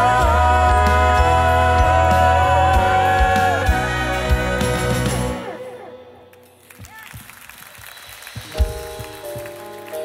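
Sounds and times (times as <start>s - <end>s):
band playing worship song: 0.0s - 6.0s.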